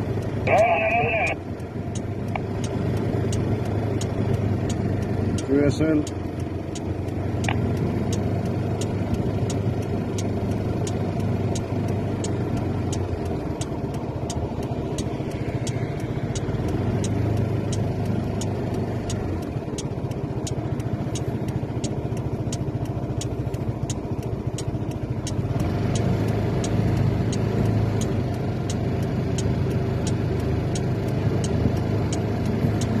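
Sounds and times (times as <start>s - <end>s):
car engine hum from inside: 0.0s - 33.0s
faint regular ticking: 0.0s - 33.0s.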